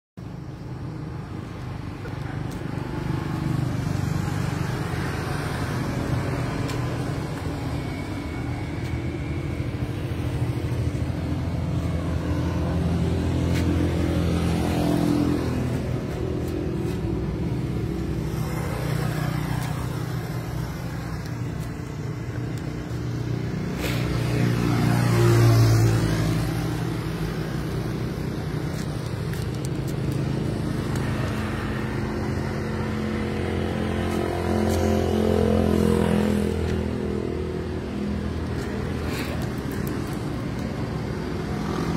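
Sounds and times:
engine rumble: 0:00.2 - 0:41.9
vehicles passing by: 0:00.2 - 0:41.9.

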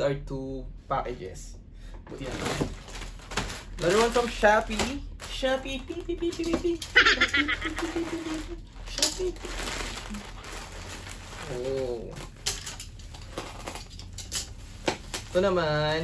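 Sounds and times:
plastic mailer tearing and crinkling: 0:02.2 - 0:15.8.

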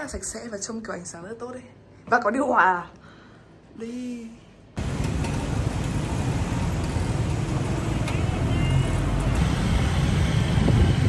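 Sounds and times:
motorbike engine rumble: 0:04.8 - 0:11.0
road noise: 0:04.8 - 0:11.0.

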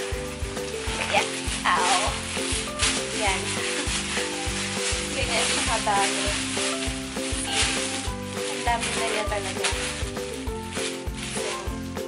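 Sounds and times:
background music with low beat: 0:00.0 - 0:12.0
plastic bag rustling and crinkling: 0:00.0 - 0:12.0.

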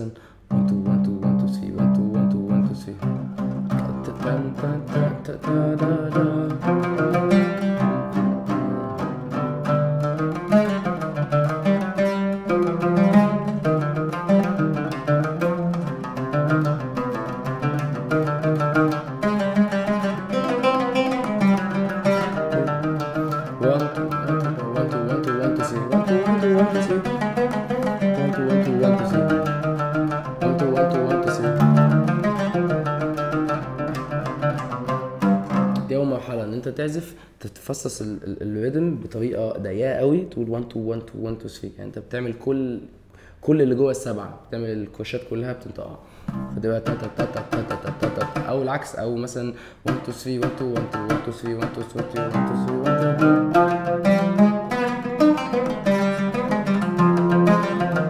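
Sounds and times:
oud plucked notes: 0:00.4 - 0:36.7, 0:46.0 - 0:58.0.

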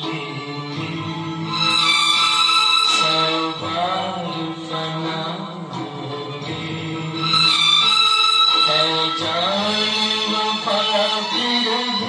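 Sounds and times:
old song from tv speaker: 0:00.0 - 0:12.0.

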